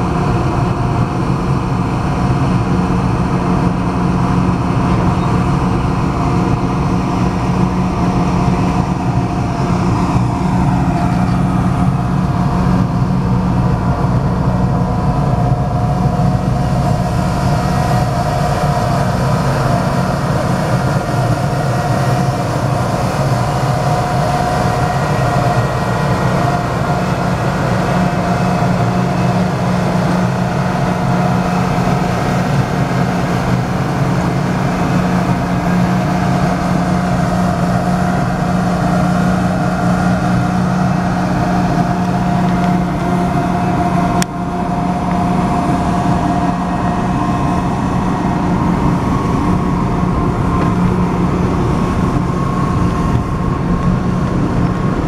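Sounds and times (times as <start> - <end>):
train cars rumbling past: 0.0 - 55.0.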